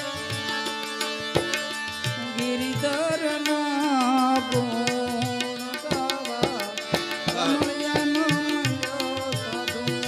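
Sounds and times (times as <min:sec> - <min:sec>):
harmonium playing held chords: 0:00.0 - 0:10.0.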